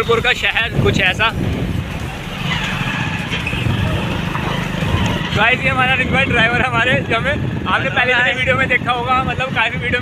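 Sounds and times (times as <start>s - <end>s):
motorcycle engine rumble: 0.0s - 10.0s
wind and road noise: 0.0s - 10.0s.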